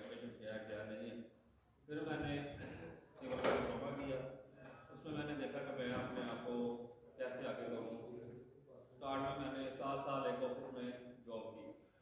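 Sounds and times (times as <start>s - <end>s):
man speaking into a microphone: 0.0s - 11.9s.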